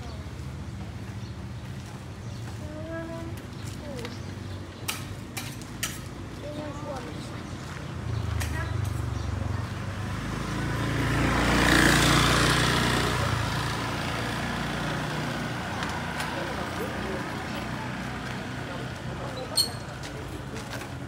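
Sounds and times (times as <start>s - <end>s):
motorbike passing by: 6.5s - 21.0s.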